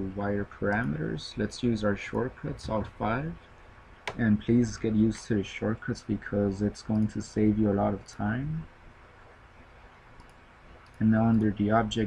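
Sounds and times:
computer mouse clicks: 0:10.2 - 0:11.6.

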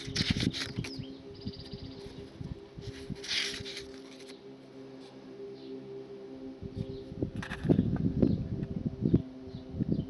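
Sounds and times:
paper pages rustling: 0:00.0 - 0:01.0, 0:02.8 - 0:04.4
low steady hum: 0:00.0 - 0:10.0.

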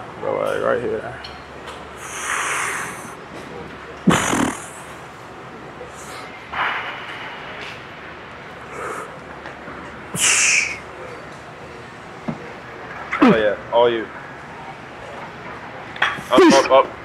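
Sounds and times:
gym background noise: 0:00.0 - 0:17.0.

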